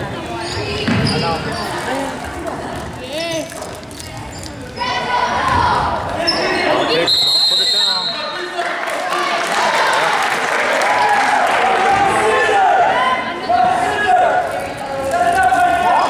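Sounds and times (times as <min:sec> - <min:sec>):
spectators' voices echoing: 0:00.0 - 0:16.0
referee's whistle: 0:06.3 - 0:08.4.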